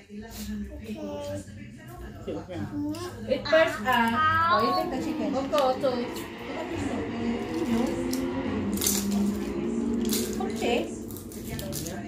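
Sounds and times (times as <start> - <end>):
low background voices: 0.0 - 12.0.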